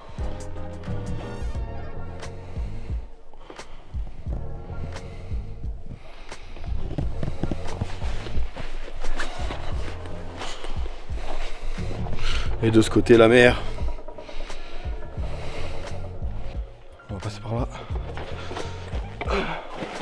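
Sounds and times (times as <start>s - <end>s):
music with beat and bass: 0.0s - 20.0s
footsteps on stony path: 17.6s - 20.0s.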